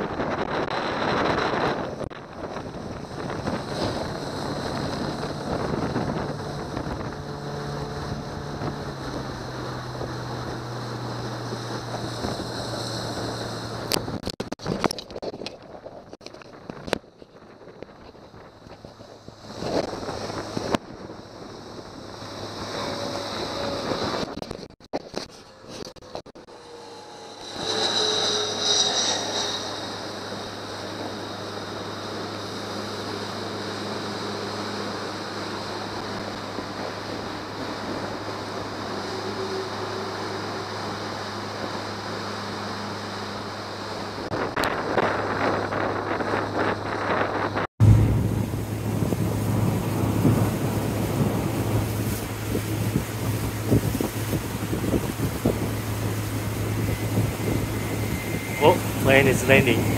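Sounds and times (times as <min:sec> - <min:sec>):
jet airliner whine overhead: 0:00.0 - 0:14.3, 0:16.4 - 0:59.9
water splashing off hull: 0:00.0 - 0:15.4, 0:16.0 - 0:59.9
motorboat engine hum: 0:00.0 - 0:59.9
wind on microphone: 0:00.0 - 0:59.9.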